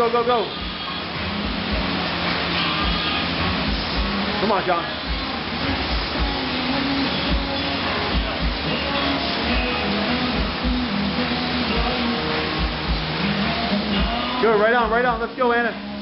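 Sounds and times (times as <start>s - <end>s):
fan bike whooshing: 0.0s - 14.6s
music with deep beat: 0.5s - 15.3s.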